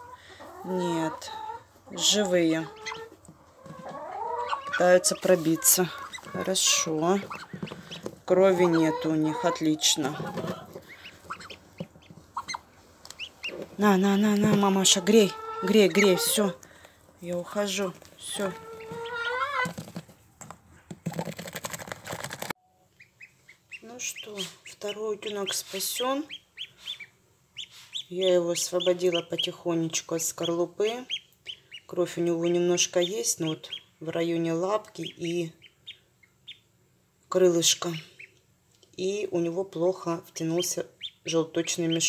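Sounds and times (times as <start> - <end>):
nest bedding rustling and crackling: 17.2 - 20.1.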